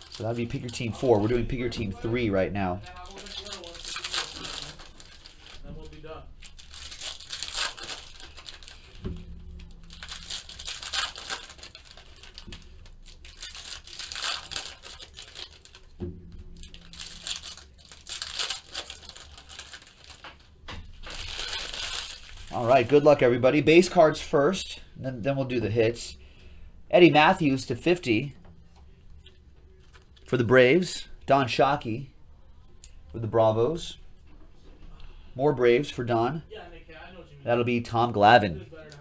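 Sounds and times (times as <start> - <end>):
foil wrapper crinkling and tearing: 0.0 - 23.0, 29.7 - 30.3.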